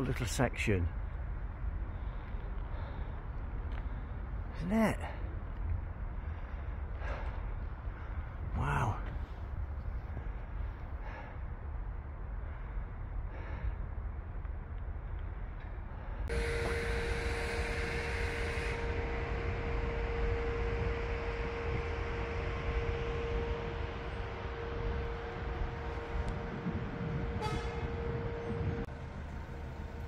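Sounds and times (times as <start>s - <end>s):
street traffic noise: 0.0s - 30.0s
steady humming tone: 9.1s - 30.0s.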